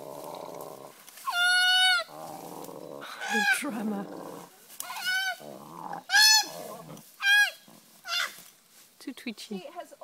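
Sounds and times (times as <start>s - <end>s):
koala distress cries: 1.2s - 2.1s.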